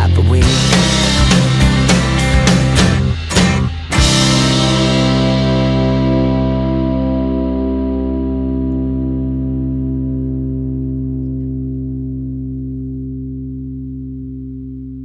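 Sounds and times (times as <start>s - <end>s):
band holding final chord: 0.0s - 11.3s.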